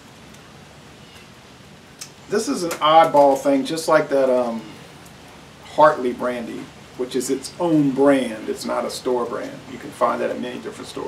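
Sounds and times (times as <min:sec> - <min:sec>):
outdoor background hiss: 0:00.0 - 0:11.0.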